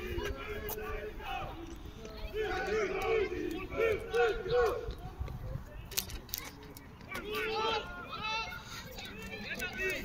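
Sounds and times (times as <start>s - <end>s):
group of players shouting: 2.3s - 4.9s, 7.2s - 8.5s.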